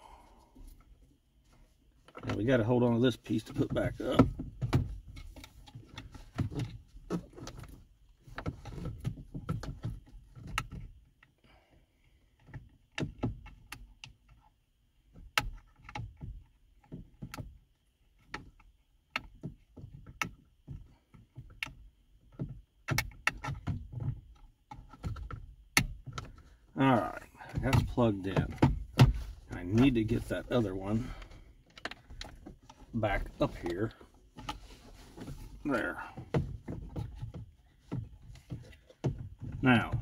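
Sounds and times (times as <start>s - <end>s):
low handling thumps: 26.8s - 31.5s.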